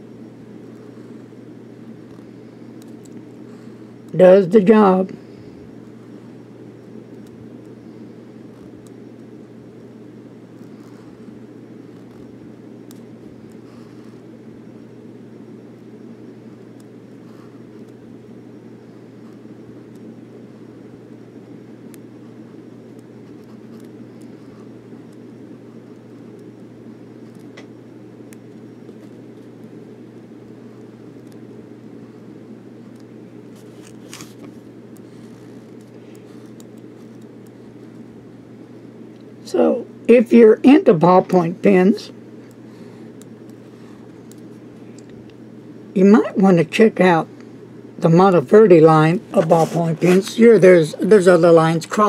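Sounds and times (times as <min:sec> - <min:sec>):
low room hum: 0:00.0 - 0:52.0.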